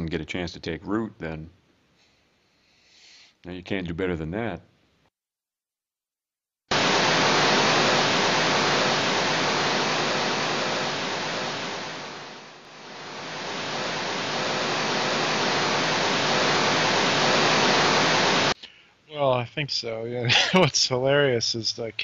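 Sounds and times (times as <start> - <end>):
static hiss: 6.7 - 18.6.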